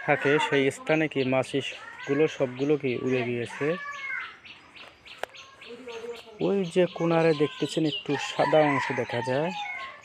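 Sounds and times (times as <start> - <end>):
small birds chirping: 0.0 - 10.0
rooster crowing: 8.1 - 10.0.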